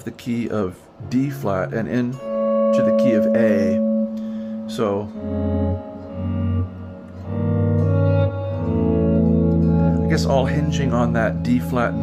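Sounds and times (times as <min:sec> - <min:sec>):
clean electric guitar chords: 0:01.0 - 0:12.0.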